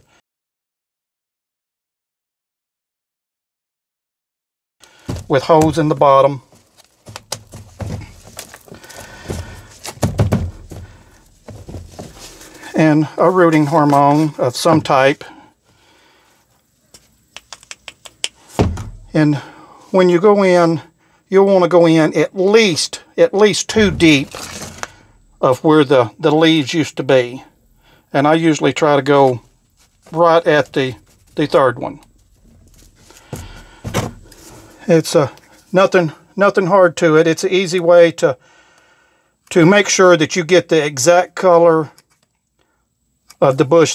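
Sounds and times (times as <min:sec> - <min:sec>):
rustling: 0:04.8 - 0:15.4, 0:23.7 - 0:26.0, 0:29.0 - 0:34.8
plastic pot knocking: 0:09.2 - 0:10.8
brief rustles: 0:23.8 - 0:25.2
soil scooped by hand: 0:23.8 - 0:25.6.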